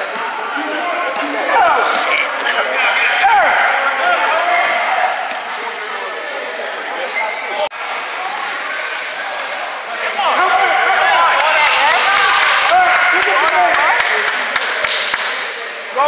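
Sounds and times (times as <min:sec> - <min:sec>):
echoing chatter in a hall: 0:00.0 - 0:16.0
sneaker squeaks on floor: 0:06.4 - 0:09.9.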